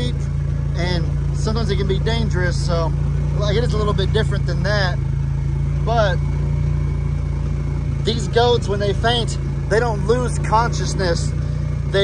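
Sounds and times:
utility vehicle engine hum: 0.0 - 12.0.

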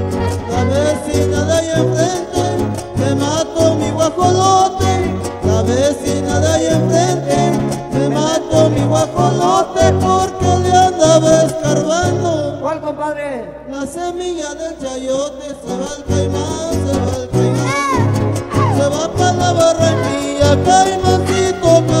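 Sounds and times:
strummed guitars and bass notes: 0.0 - 22.0.

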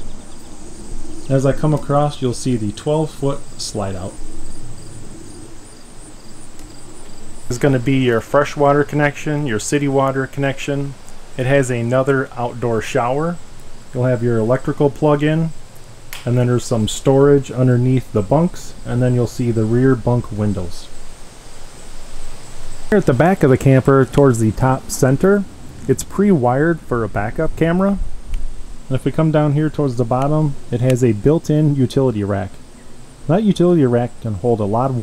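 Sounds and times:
insects chirping in pulses: 0.0 - 35.0
outdoor background hiss: 0.0 - 35.0
man talking: 1.3 - 4.2, 7.5 - 15.6, 16.2 - 21.0, 22.9 - 28.1, 28.9 - 32.6, 33.2 - 35.0.

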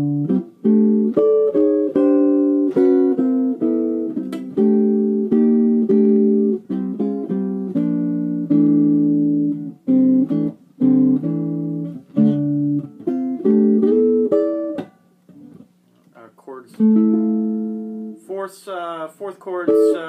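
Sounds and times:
jazz guitar chords: 0.0 - 20.0.

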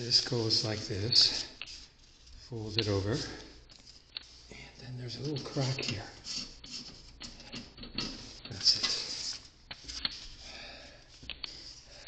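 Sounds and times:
paper rustling and scraping: 0.0 - 10.4.

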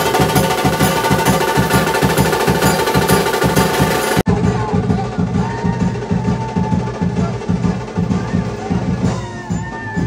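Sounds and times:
loud fast drumming: 0.0 - 10.0.

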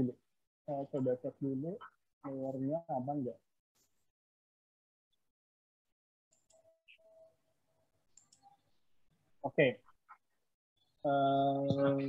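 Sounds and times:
computer mouse clicks: 8.1 - 8.6.

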